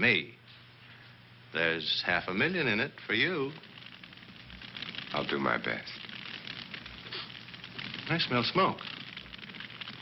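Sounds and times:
fire crackling: 0:00.0 - 0:10.0
soundtrack hiss: 0:00.0 - 0:10.0.

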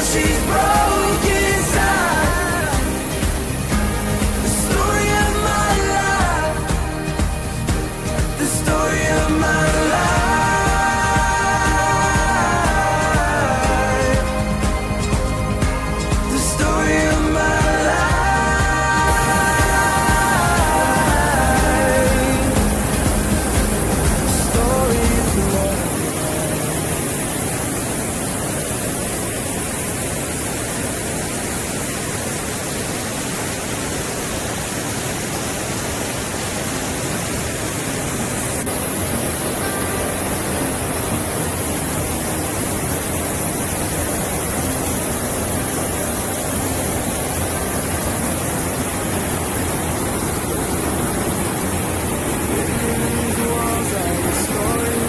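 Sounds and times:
pop song: 0:00.0 - 0:27.5, 0:48.8 - 0:55.0
waterfall roaring over boulders: 0:00.0 - 0:55.0.

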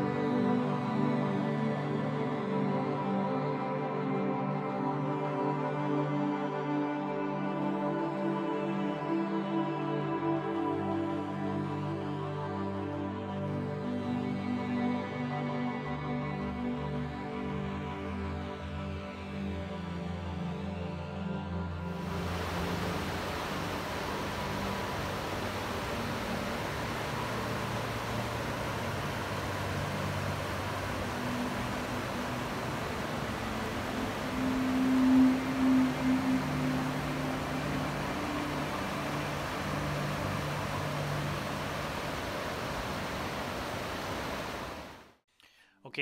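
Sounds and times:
water rushing: 0:21.9 - 0:45.2.

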